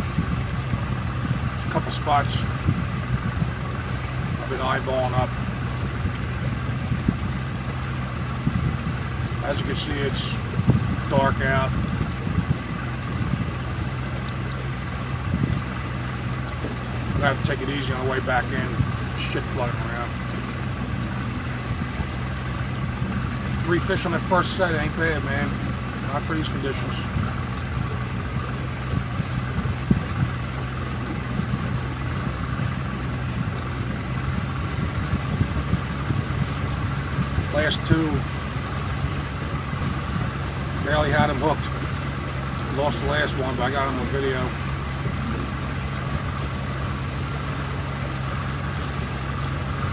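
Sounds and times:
boat motor running: 0.0 - 49.9
wind and water hiss: 0.0 - 49.9.

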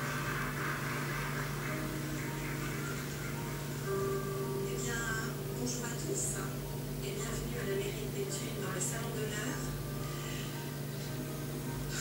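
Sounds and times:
aquarium pump humming: 0.0 - 12.0.

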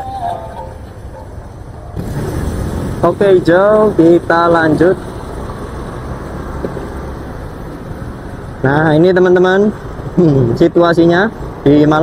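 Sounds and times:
motor scooter engine rumble: 0.0 - 8.4.

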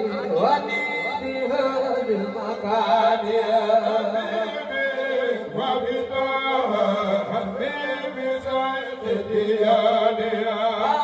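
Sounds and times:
men chanting into microphones: 0.0 - 11.0.

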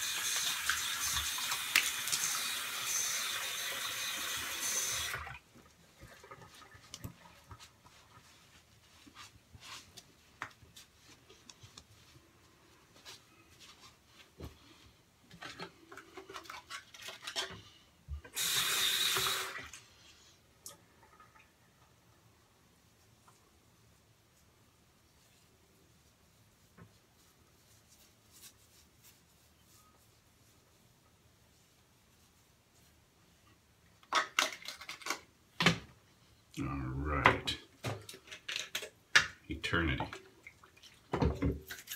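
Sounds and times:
tap water running: 0.0 - 7.6, 18.2 - 19.9
small items clicking and knocking: 34.0 - 35.3, 37.9 - 39.4.

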